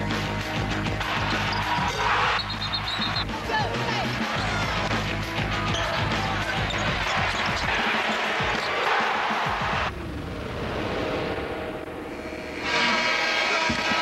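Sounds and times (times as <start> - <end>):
basketball game sounds: 0.0 - 10.9
music: 0.0 - 14.0.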